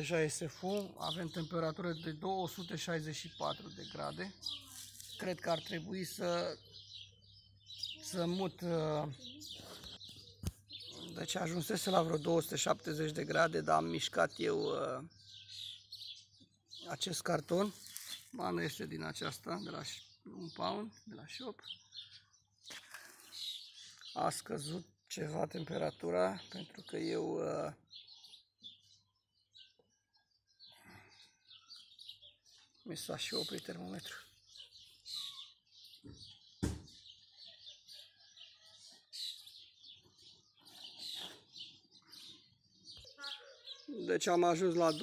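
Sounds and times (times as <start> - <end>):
faint bird chirps: 0.7 - 12.4, 25.6 - 44.4
sharp knock: 36.6 - 36.9.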